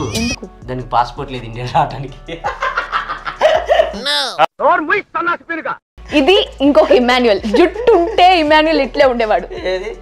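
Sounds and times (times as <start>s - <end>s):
background music: 0.0s - 4.4s, 6.0s - 10.0s
short vocal sounds: 4.0s - 4.4s.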